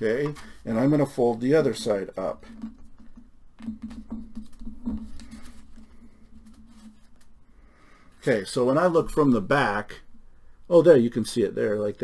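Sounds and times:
paper rustling and creasing: 0:03.8 - 0:07.4.

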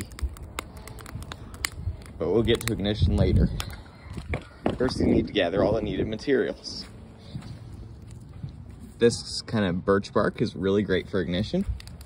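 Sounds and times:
wood fire crackling and popping: 0:00.0 - 0:08.9, 0:10.5 - 0:12.0.

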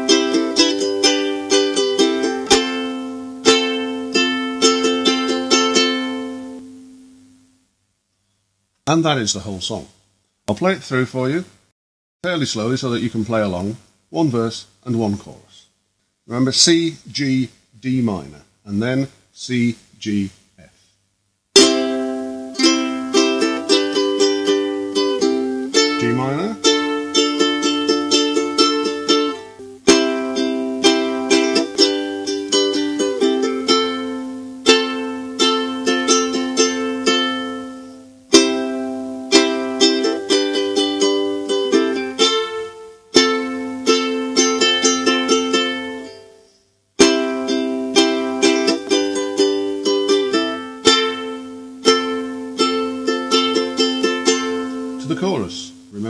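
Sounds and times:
ukulele strummed slowly: 0:00.0 - 0:07.5, 0:21.6 - 0:56.0.

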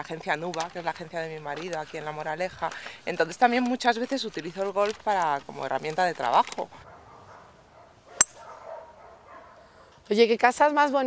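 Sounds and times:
golf club striking ball: 0:08.2 - 0:08.4.

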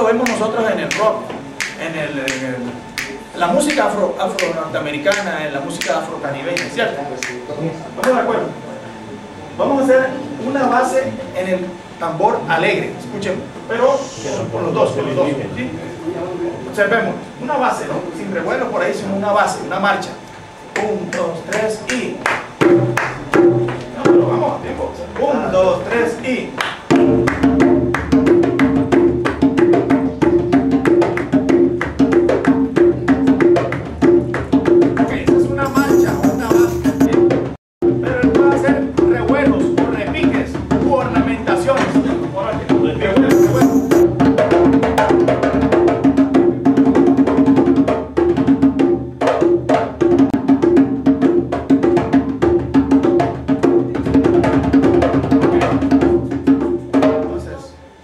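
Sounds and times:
other percussion: 0:00.0 - 0:07.5, 0:20.8 - 0:24.5, 0:26.6 - 0:57.3
hand drum steady rhythm: 0:26.9 - 0:41.1, 0:41.9 - 0:57.1.

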